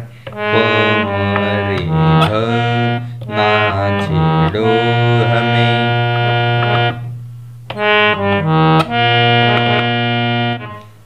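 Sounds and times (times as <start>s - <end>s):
low drone: 0.0s - 10.8s
harmonium melody: 0.0s - 11.0s.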